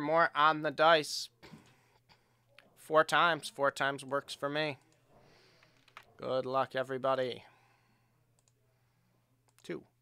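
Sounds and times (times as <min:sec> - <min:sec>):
computer mouse clicks: 0:08.4 - 0:08.6.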